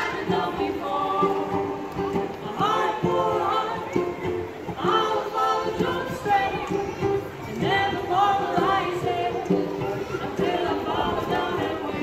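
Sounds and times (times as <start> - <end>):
banjo: 0.0 - 12.0
voices singing together: 0.0 - 12.0.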